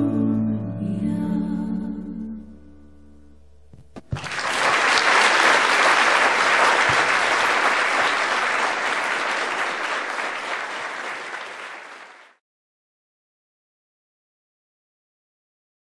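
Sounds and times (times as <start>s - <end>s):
audience applauding: 4.1s - 12.4s.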